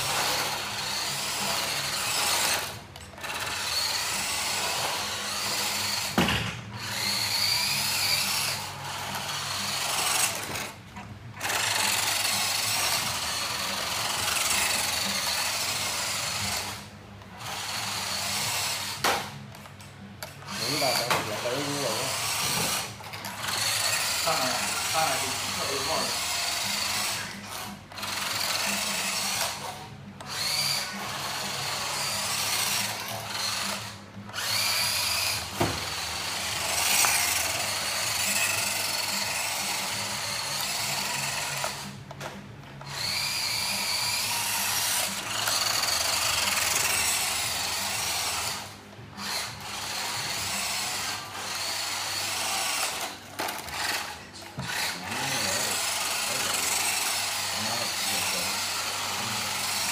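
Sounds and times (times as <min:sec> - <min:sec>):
toy truck electric motor whining: 0:00.0 - 0:59.9.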